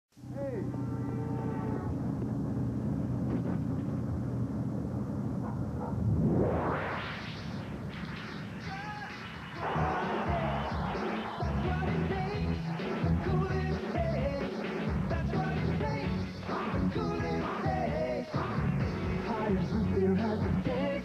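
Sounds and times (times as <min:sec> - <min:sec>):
low rumbling drone: 0:00.2 - 0:08.6
loud rising whoosh: 0:00.8 - 0:08.6
rock music: 0:08.3 - 0:21.0.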